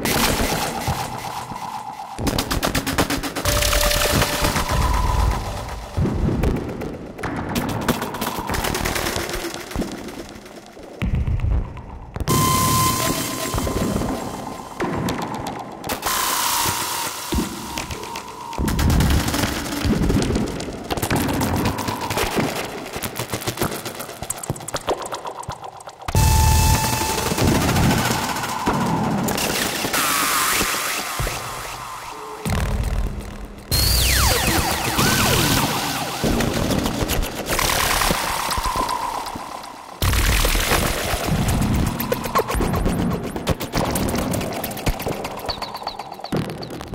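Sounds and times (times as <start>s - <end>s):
held synthesizer tones: 12.3s - 14.8s
synthesizer noisy bursts: 12.3s - 15.5s, 26.2s - 40.2s.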